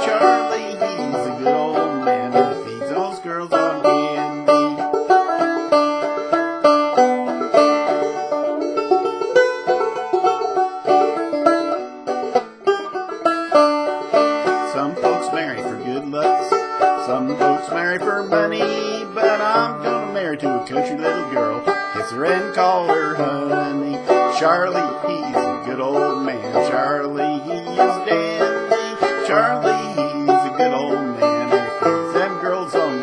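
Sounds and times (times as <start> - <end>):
banjo plucking: 0.0 - 33.0.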